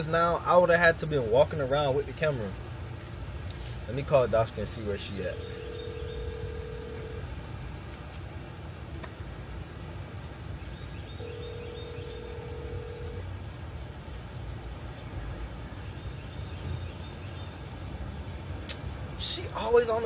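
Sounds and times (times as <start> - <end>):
low outdoor rumble: 0.0 - 20.0
telephone ringback tone: 5.3 - 7.2, 11.2 - 13.2.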